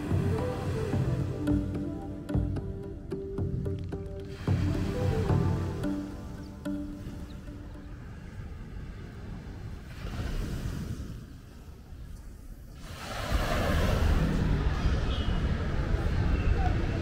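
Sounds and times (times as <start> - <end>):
background music: 0.0 - 8.9
city street traffic: 13.7 - 17.0.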